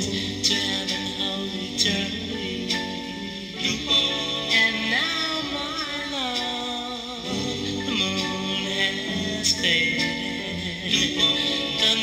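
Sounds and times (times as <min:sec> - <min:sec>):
guitar: 0:00.0 - 0:12.0
vocal group singing ballad: 0:00.0 - 0:12.0.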